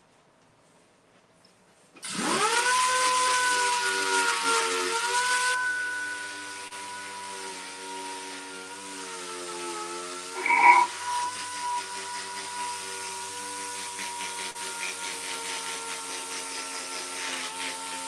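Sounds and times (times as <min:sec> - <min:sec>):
orbital sander whining: 0:02.0 - 0:18.0
hissing scrape: 0:10.2 - 0:14.6.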